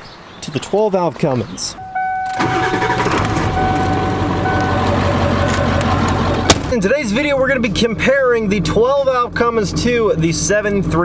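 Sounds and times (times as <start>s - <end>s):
steady high tone: 1.8s - 6.6s
diesel engine starting and idling: 1.8s - 11.0s.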